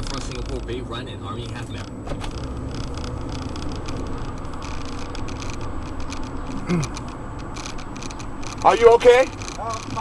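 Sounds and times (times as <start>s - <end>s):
car engine and tyres rumble: 0.0s - 10.0s.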